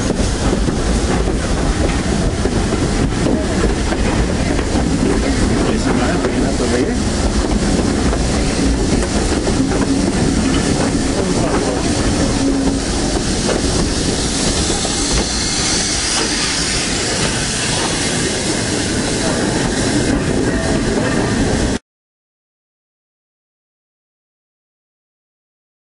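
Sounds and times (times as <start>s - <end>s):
steam locomotive hissing: 0.0s - 21.8s
train wheels clattering: 0.0s - 21.8s.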